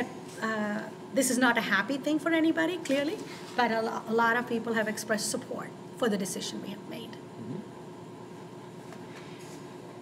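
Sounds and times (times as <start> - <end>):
faint steady hum: 0.0 - 10.0
room hiss and rumble: 0.0 - 10.0.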